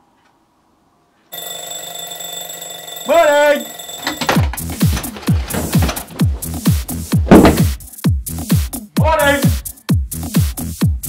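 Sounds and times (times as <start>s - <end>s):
alarm clock bell ringing: 1.3s - 5.1s
alarm clock ticking: 1.3s - 6.7s.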